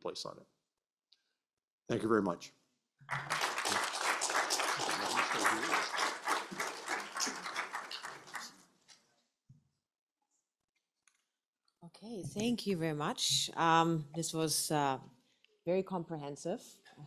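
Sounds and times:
audience applauding: 0:03.1 - 0:08.6.

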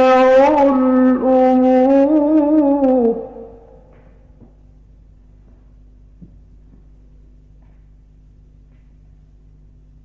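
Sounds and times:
recording hum and hiss: 0:00.0 - 0:10.0.

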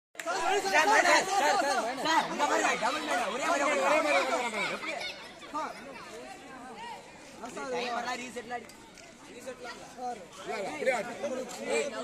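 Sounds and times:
voices shouting and calling out: 0:00.2 - 0:12.0.

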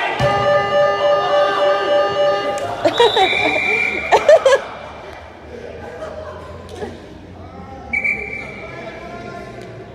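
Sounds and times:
referee's whistle blast: 0:00.2 - 0:04.1.

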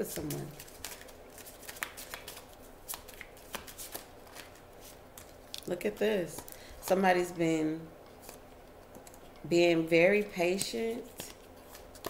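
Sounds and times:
cards shuffling: 0:00.0 - 0:07.0, 0:10.5 - 0:12.0.

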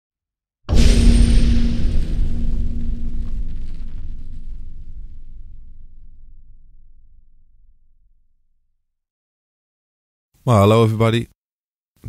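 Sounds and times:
deep cinematic boom rumble: 0:00.7 - 0:08.6.

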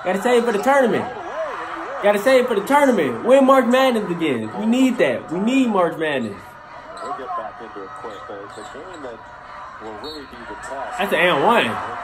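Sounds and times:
commentator's voice: 0:00.0 - 0:01.2, 0:01.8 - 0:06.5, 0:10.0 - 0:12.0.

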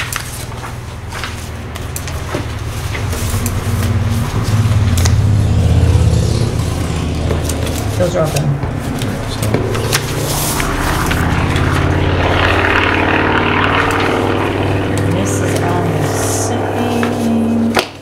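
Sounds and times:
engine drone: 0:00.0 - 0:18.0.

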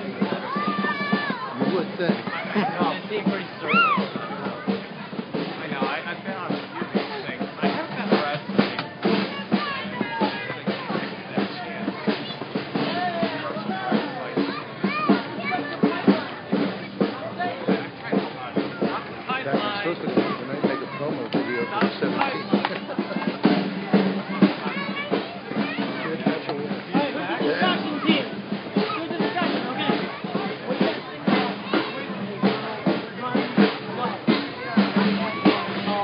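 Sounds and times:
drumming: 0:00.0 - 0:36.0
many voices: 0:00.0 - 0:36.0.

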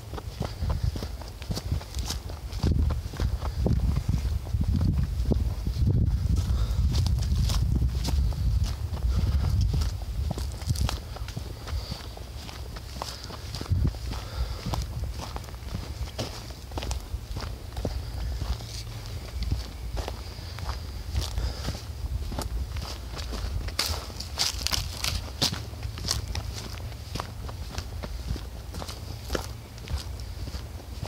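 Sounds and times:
footsteps on dry leaves and dirt: 0:00.0 - 0:31.0
low rumble on microphone: 0:00.0 - 0:31.0.

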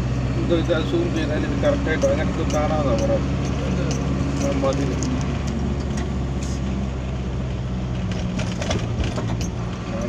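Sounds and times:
vehicle engine hum and road noise: 0:00.0 - 0:10.0.

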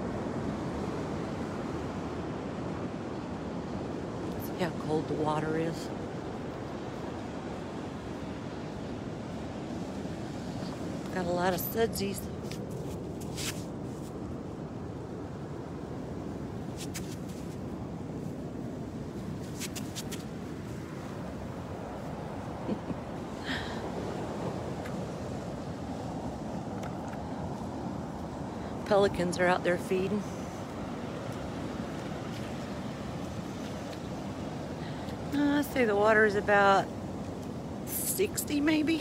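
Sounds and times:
ocean surf on a beach: 0:00.0 - 0:39.0.

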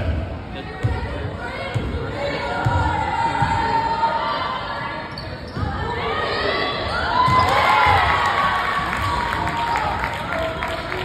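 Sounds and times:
crowd chatter: 0:00.0 - 0:11.0
crowd cheering: 0:06.9 - 0:11.0.

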